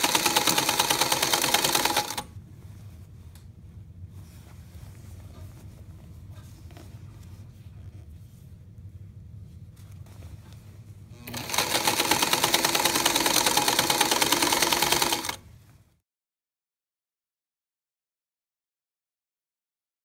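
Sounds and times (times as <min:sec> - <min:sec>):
electric sewing machine stitching: 0:00.0 - 0:02.3, 0:11.1 - 0:15.4.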